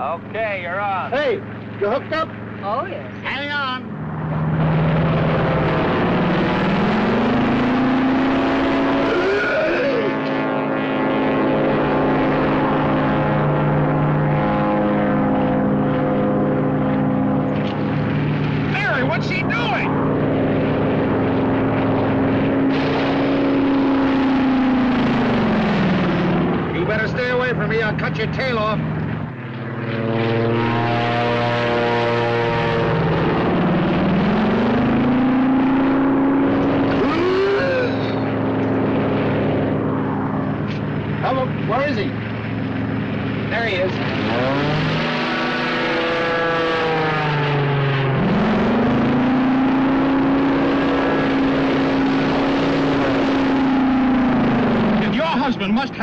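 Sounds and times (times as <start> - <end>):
propeller airplane engines droning: 0.0 - 56.0.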